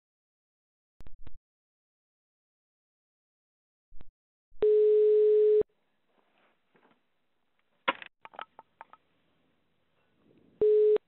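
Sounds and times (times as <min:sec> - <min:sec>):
telephone ringing tone: 0:04.6 - 0:05.6, 0:10.6 - 0:11.0.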